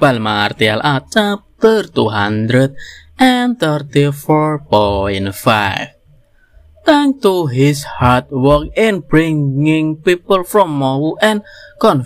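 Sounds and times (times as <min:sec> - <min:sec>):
man speaking: 0:00.0 - 0:06.0, 0:06.8 - 0:12.0.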